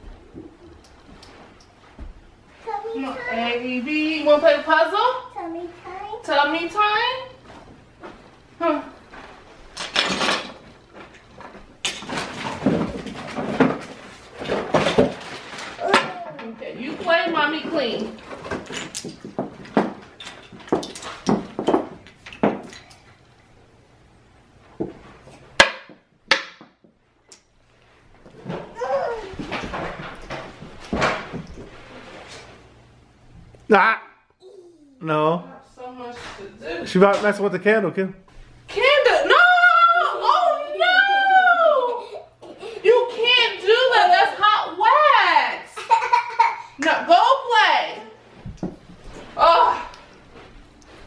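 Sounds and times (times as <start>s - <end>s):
rustling and handling noise: 0.0s - 3.6s, 7.3s - 25.6s, 26.9s - 33.7s, 48.0s - 51.0s.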